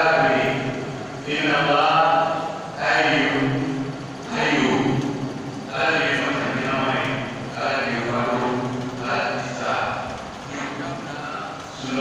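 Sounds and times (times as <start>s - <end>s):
man speaking over pa: 5.7s - 12.0s.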